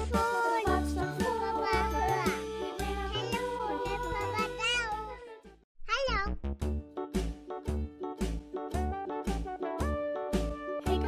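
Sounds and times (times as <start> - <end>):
upbeat music with regular beat: 0.0 - 4.7, 6.5 - 11.0
background music: 0.0 - 5.6, 6.5 - 11.0.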